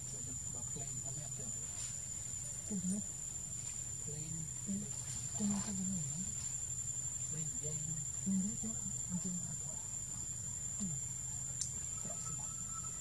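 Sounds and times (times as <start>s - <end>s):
insects droning: 0.0s - 13.0s.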